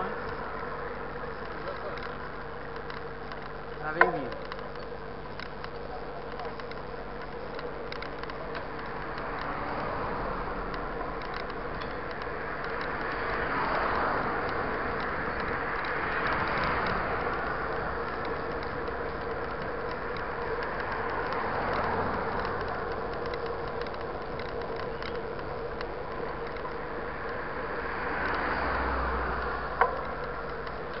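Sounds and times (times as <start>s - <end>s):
cars passing by: 0.0s - 4.6s, 5.3s - 31.0s
road noise: 0.0s - 31.0s.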